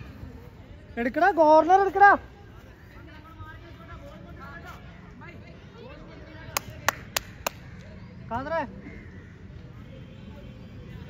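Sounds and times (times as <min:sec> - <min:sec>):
faint voices: 0:00.0 - 0:11.0
sharp hand claps: 0:06.5 - 0:07.7.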